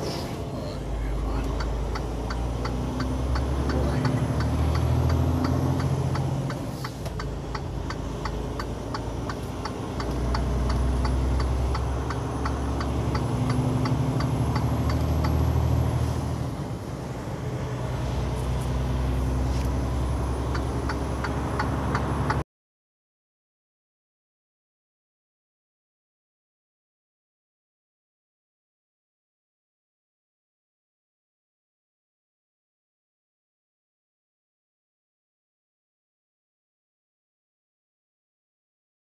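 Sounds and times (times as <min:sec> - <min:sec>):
truck engine and road noise: 0:00.0 - 0:22.5
steady ticking: 0:01.2 - 0:15.4.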